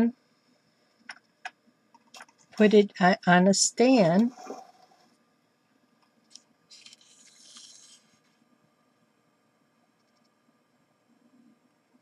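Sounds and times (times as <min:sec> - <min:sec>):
aluminium foil crinkling: 0:06.7 - 0:08.2.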